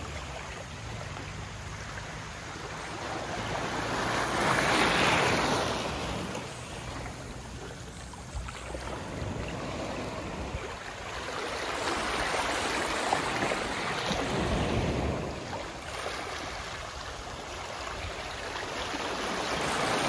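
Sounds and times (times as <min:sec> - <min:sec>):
waves washing onto beach: 0:00.0 - 0:20.0.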